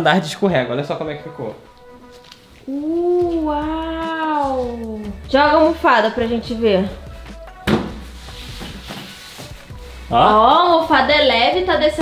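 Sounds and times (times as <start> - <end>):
pillow scraping down cardboard: 8.0 - 9.8.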